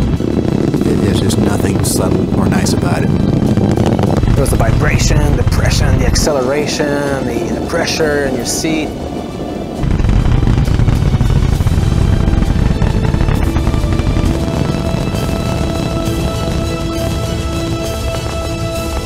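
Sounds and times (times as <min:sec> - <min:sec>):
deep rocket launch rumble: 0:00.0 - 0:19.0
music with long held notes: 0:08.9 - 0:19.0.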